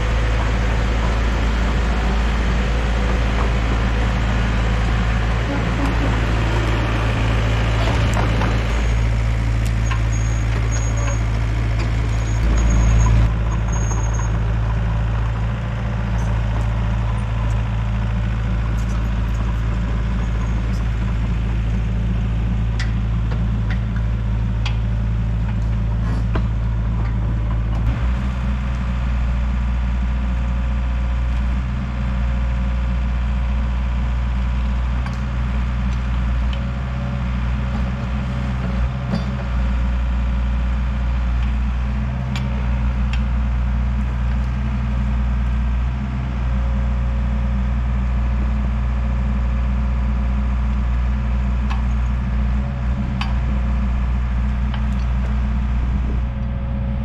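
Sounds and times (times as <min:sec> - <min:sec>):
diesel excavator engine: 0:00.0 - 0:57.0.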